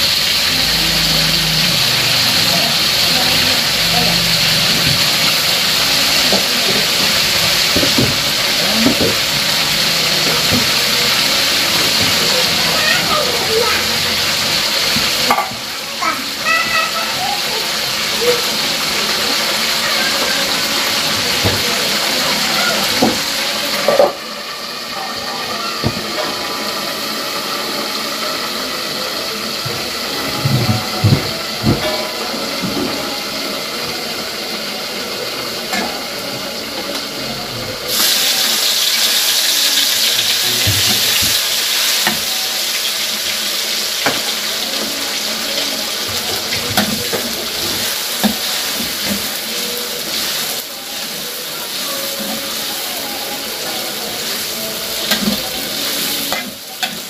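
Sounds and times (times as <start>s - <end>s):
oil sizzling in woks: 0.0s - 57.0s.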